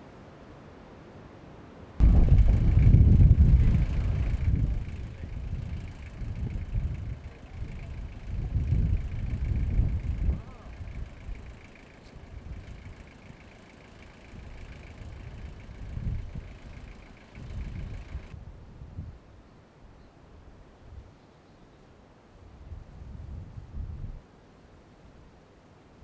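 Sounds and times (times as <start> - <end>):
wind buffeting microphone: 2.0 - 19.2, 22.8 - 24.2.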